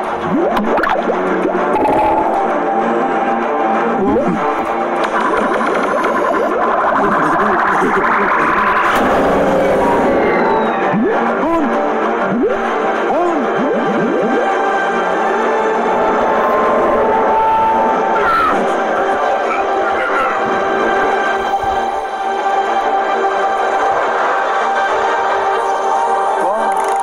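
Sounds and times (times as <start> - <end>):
cartoon background music: 0.0 - 27.0
rising sweep: 1.3 - 12.9.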